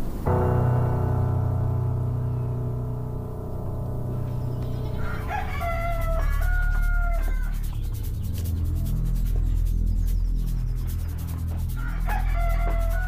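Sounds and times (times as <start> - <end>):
soft music: 0.0 - 13.0
rooster crowing: 4.8 - 7.9, 11.8 - 13.0.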